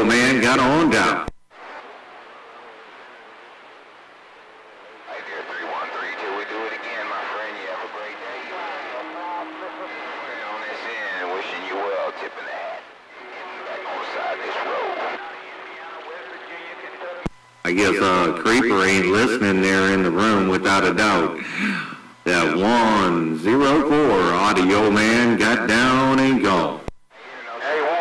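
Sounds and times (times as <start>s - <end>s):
radio static hiss: 0.0s - 28.0s
voices through radio speaker: 0.0s - 28.0s.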